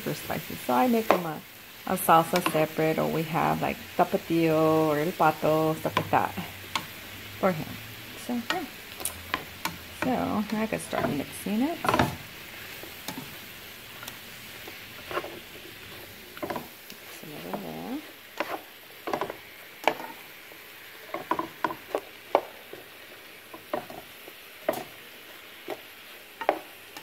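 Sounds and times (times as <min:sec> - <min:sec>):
food sizzling in a frying pan: 0:00.0 - 0:27.0
utensil scraping a pan: 0:08.2 - 0:20.3.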